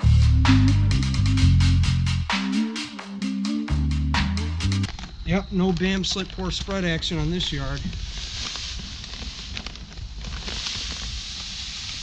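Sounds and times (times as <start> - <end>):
bag rustling: 4.9 - 12.0
granules pouring into hopper: 5.5 - 12.0.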